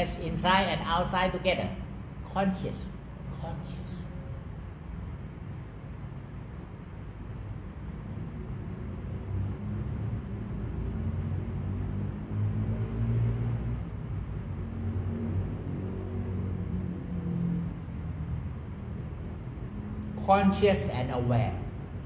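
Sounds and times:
faint hum: 0.0 - 22.0
low background rumble: 0.0 - 22.0.

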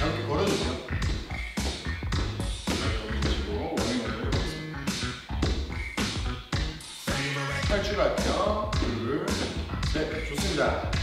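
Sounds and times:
continuous bass line: 0.0 - 11.0
dance song with steady beat: 0.0 - 11.0.

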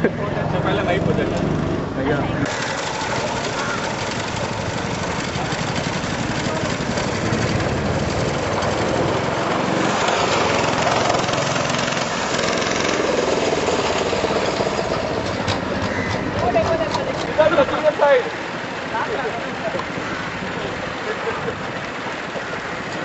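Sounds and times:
go-kart engine buzzing: 0.0 - 17.8.

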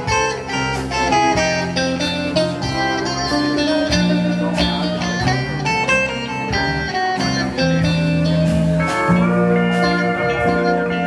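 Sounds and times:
guitar picking melody: 0.0 - 11.0
sustained bass line: 0.0 - 11.0.

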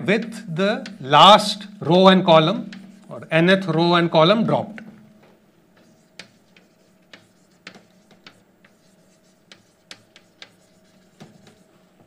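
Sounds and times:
chalk tapping on blackboard: 2.4 - 3.9, 5.7 - 11.7.

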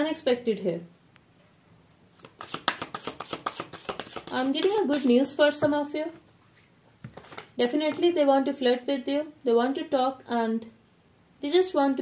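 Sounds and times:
cards being shuffled: 2.2 - 5.2, 7.0 - 7.6.

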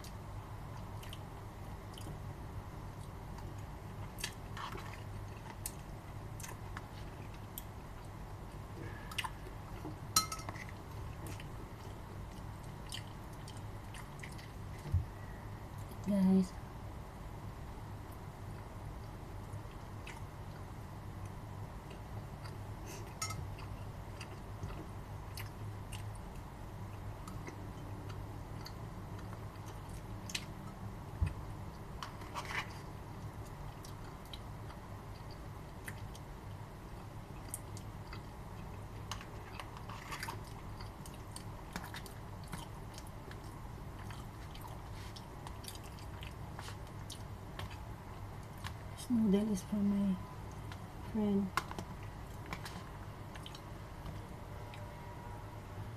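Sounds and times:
person chewing with crunches: 0.0 - 2.2, 2.9 - 9.9, 10.5 - 14.9, 18.6 - 36.3, 37.0 - 48.8, 51.6 - 54.9
low room hum: 0.0 - 55.9.

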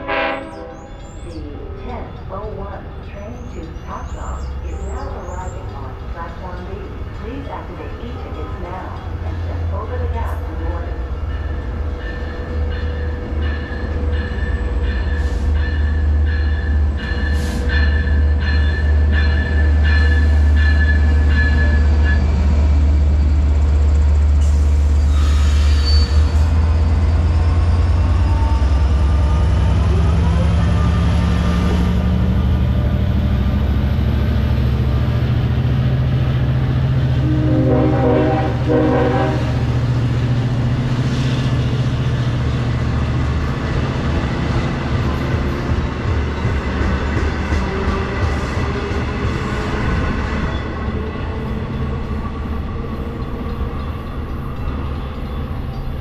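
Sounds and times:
train horn blasts: 0.0 - 1.0, 37.2 - 39.6
diesel locomotive engine drone: 0.0 - 56.0.

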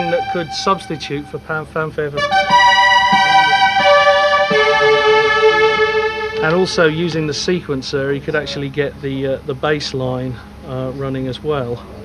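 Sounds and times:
synthesizer fanfare chords: 0.0 - 7.2.

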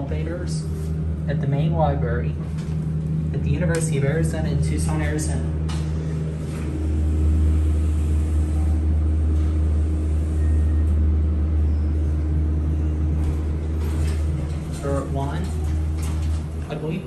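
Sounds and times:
elevator car rumbling: 0.0 - 17.0
faint steady hum: 0.0 - 17.0.

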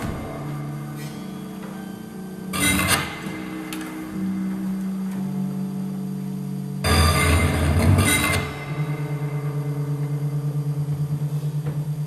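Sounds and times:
low pulsing musical drone: 0.0 - 12.0.

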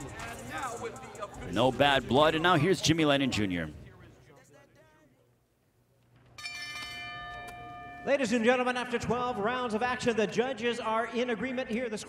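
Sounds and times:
metal bell ringing: 6.4 - 9.8.

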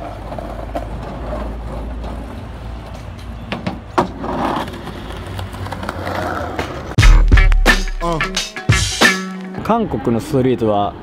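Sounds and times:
skateboard wheels rumbling: 0.0 - 7.0.

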